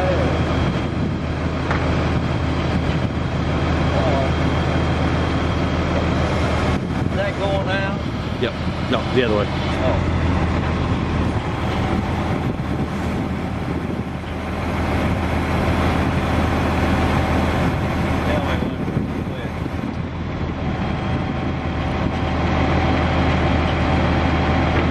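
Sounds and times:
diesel truck engine running: 0.0 - 24.9.

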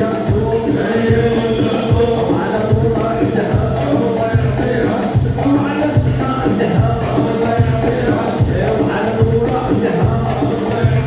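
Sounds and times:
men chanting together: 0.0 - 11.0
steady drum beat: 0.0 - 11.0.

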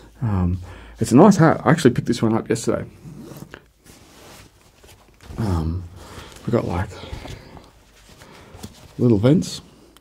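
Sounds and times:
fabric rustling: 3.0 - 9.6.

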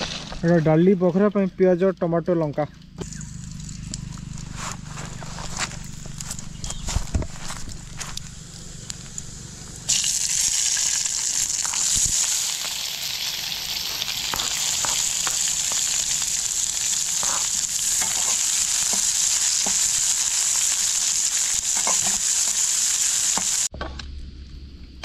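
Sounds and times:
onions sizzling in hot oil: 8.4 - 23.7.

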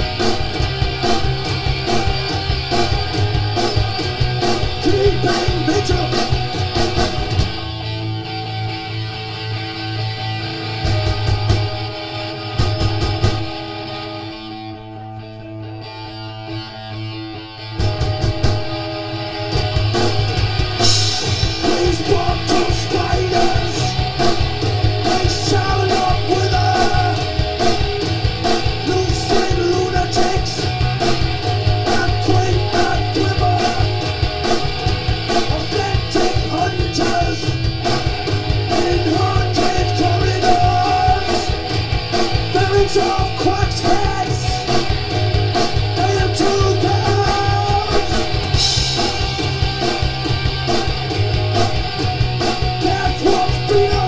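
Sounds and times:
steady drum beat: 0.0 - 8.0, 10.7 - 13.7, 17.8 - 54.0
electric guitar: 0.0 - 54.0
man singing: 4.8 - 6.4, 21.6 - 24.1, 25.0 - 27.4, 28.8 - 30.8, 31.8 - 34.0, 35.4 - 37.6, 38.7 - 41.6, 42.5 - 44.8, 45.9 - 48.3, 52.8 - 54.0.

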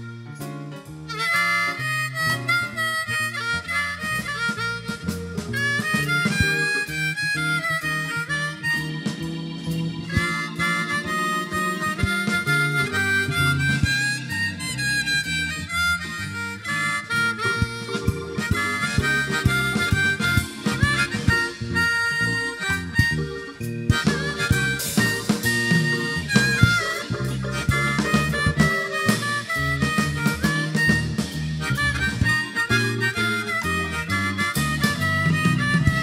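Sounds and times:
blues harmonica solo: 0.0 - 36.0
electric bass line: 0.0 - 36.0.

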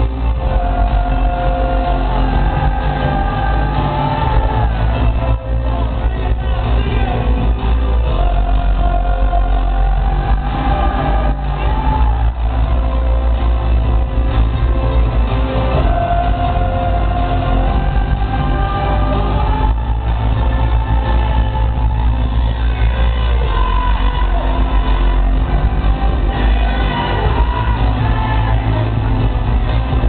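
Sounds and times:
booming bass: 0.0 - 30.0.

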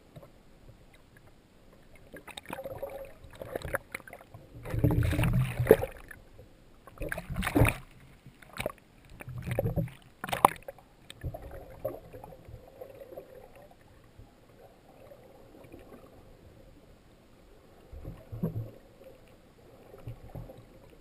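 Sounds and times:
seawater sloshing and splashing: 1.9 - 14.0.

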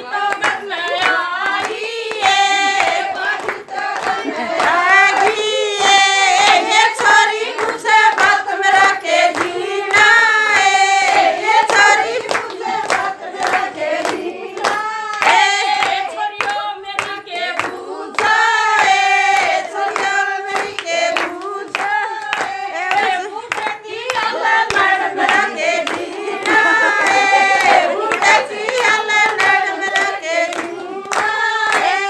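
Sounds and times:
rhythmic hand clapping: 0.0 - 32.0
women singing folk song: 0.0 - 32.0.

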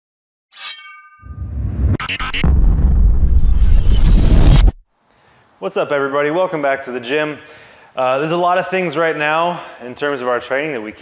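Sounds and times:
bright metallic clang: 0.6 - 1.9.

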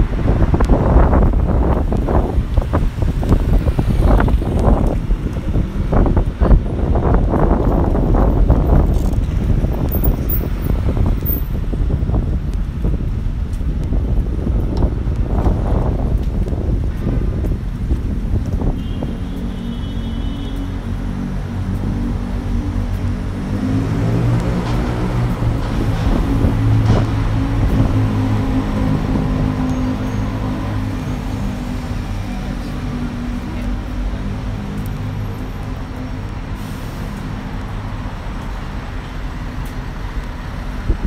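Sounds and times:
wind buffeting the microphone: 0.0 - 19.7, 20.6 - 41.0
street traffic: 0.0 - 41.0
bus diesel engine drone: 19.3 - 41.0.

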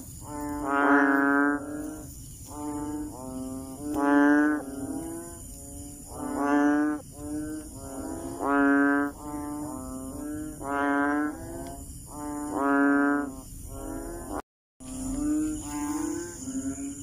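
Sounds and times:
frog low calls: 0.0 - 17.0
quieter frog calls: 0.0 - 17.0.

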